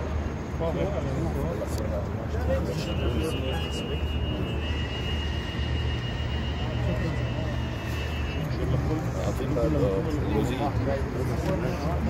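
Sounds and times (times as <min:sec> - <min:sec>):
murmur of crowd voices: 0:00.0 - 0:12.0.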